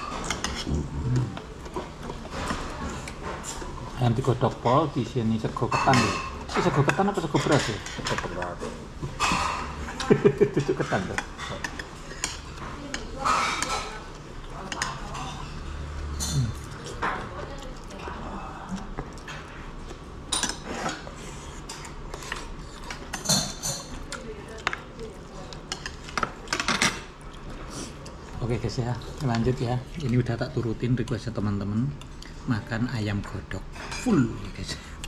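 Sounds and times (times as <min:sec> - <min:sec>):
utensils clinking on pots and dishes: 0:05.5 - 0:17.4, 0:20.3 - 0:24.1, 0:25.7 - 0:27.2.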